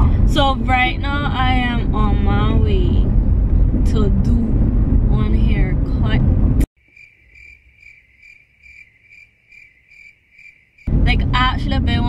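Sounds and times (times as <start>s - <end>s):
crickets chirping: 6.8s - 10.9s.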